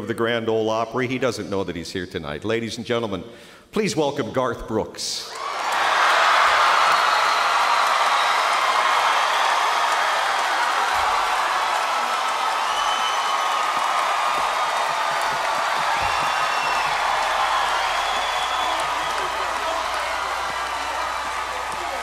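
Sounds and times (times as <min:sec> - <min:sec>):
audience applauding and cheering: 0:05.3 - 0:22.0.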